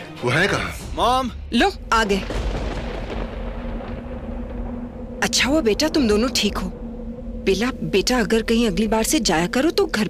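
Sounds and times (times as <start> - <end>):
low rumble: 1.4 - 10.0.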